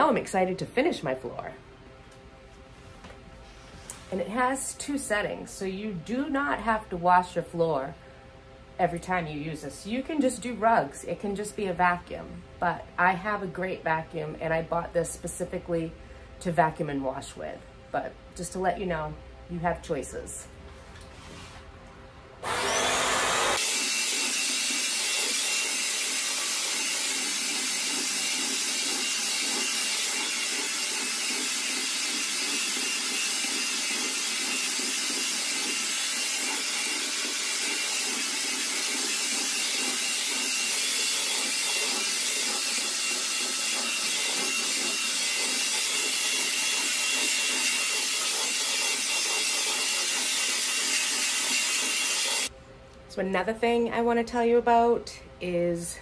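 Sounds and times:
floor cleaner running: 22.4 - 52.5.

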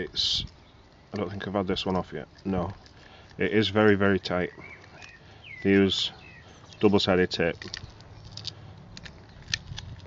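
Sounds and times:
plastic casing clicks and crackles: 7.6 - 10.0.

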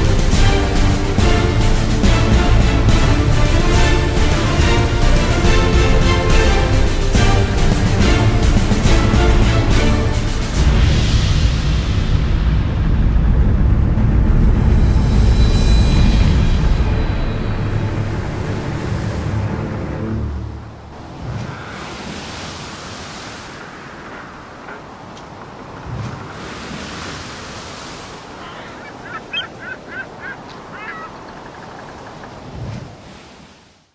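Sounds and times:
music: 0.0 - 20.9
surf: 0.0 - 33.9
wind: 0.0 - 33.9.

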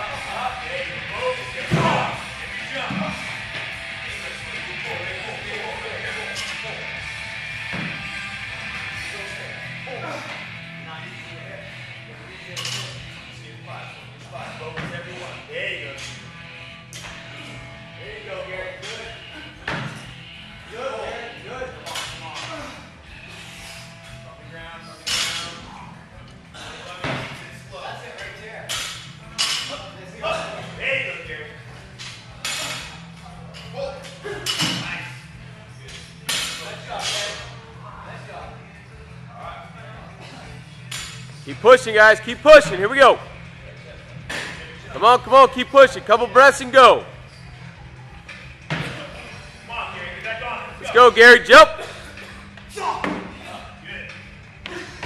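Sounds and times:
background music: 0.0 - 55.0
voices: 44.8 - 47.2, 50.1 - 51.8.

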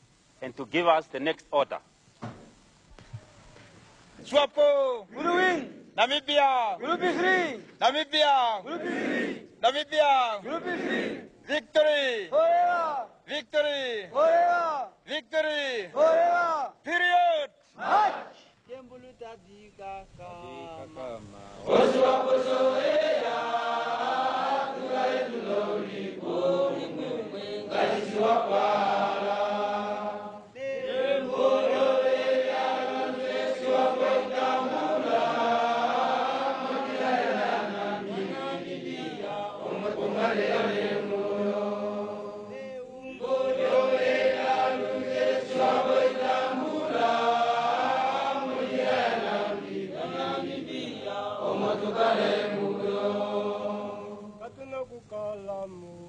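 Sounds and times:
crowd chanting a song: 8.6 - 9.5, 10.4 - 11.4, 21.7 - 42.6, 43.2 - 54.4.

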